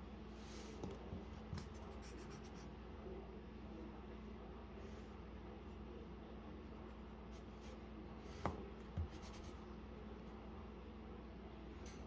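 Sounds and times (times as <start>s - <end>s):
pencil scratching on paper: 1.4s - 2.7s, 9.0s - 9.6s.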